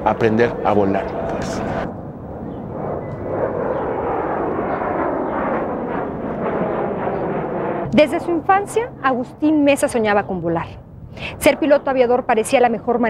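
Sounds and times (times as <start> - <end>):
airplane engine in flight: 0.0 - 11.4.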